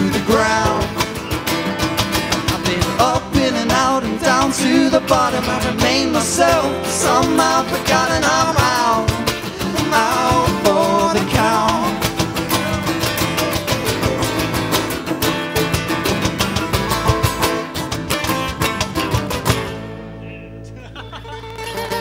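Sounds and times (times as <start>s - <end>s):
live band with acoustic guitar: 0.0s - 22.0s.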